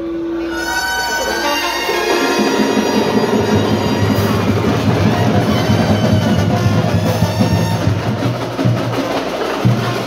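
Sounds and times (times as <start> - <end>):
pep band playing: 0.0 - 10.0.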